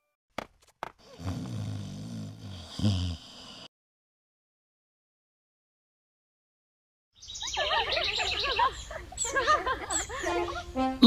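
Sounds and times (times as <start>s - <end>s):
cartoon birdsong chirps: 7.2s - 10.8s.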